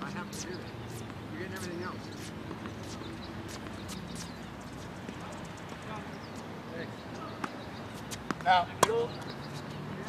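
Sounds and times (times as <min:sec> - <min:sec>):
tennis balls struck and bouncing: 0:01.0 - 0:05.3, 0:07.3 - 0:10.0.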